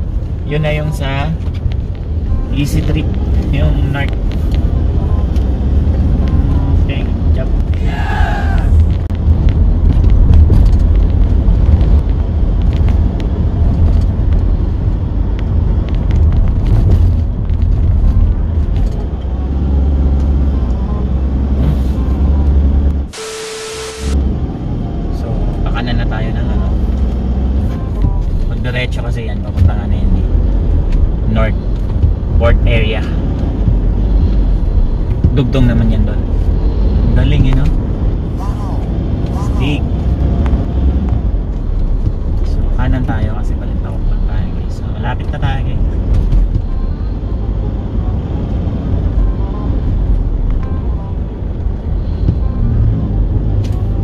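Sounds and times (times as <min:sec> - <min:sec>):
car cabin road rumble: 0:00.0 - 0:23.2, 0:24.0 - 0:54.0
steady tone: 0:19.4 - 0:24.3.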